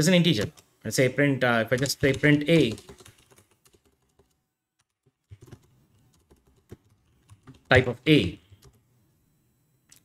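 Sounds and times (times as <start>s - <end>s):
typing on computer keyboard: 1.7s - 7.8s, 8.5s - 8.8s.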